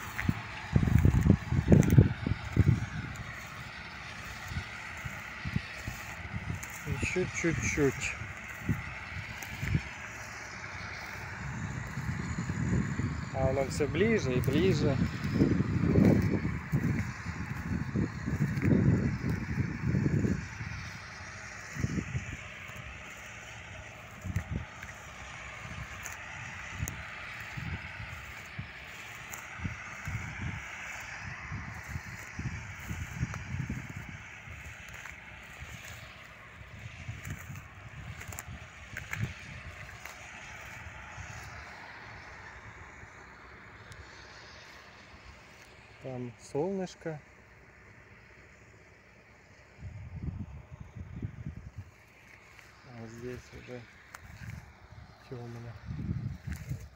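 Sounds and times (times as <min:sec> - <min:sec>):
wind buffeting microphone: 0:00.0 - 0:46.4, 0:49.6 - 0:56.9.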